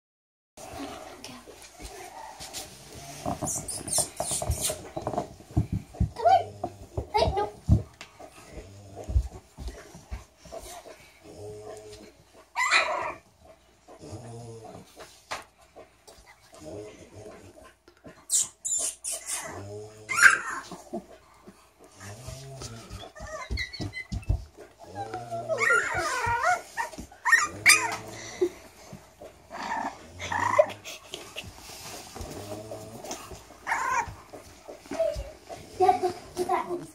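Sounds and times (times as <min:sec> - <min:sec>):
puppies squeaking and whimpering: 0:03.2 - 0:05.2, 0:18.3 - 0:21.0, 0:22.9 - 0:28.4, 0:33.6 - 0:34.1.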